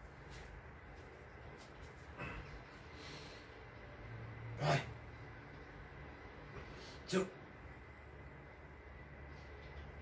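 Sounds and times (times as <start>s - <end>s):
low hum of effort: 0.0s - 10.0s
strained breathing: 2.0s - 3.8s.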